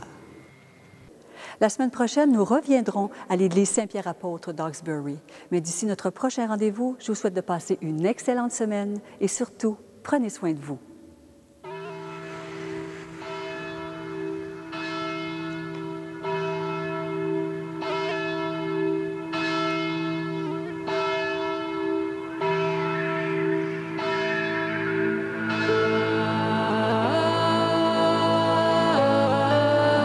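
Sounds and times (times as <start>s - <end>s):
church bells ringing: 11.6s - 30.0s
music: 25.2s - 30.0s.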